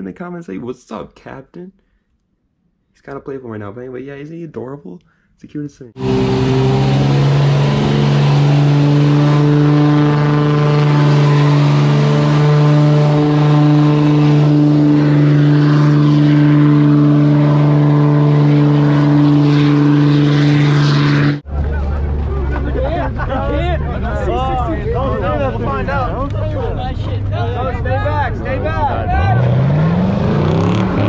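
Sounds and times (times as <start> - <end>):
spinning tyres hissing: 6.0 - 21.4
low engine rumble: 6.0 - 31.0
truck engine revving high: 6.0 - 31.0.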